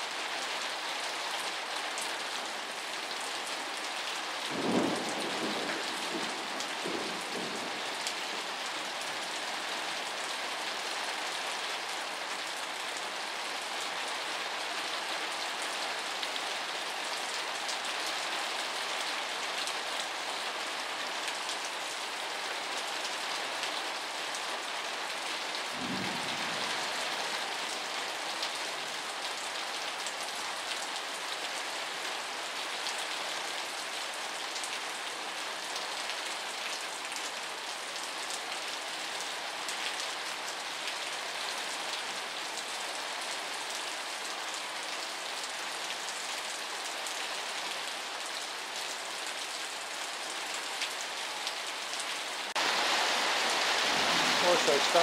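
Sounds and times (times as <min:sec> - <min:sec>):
steady rain hiss: 0:00.0 - 0:55.0.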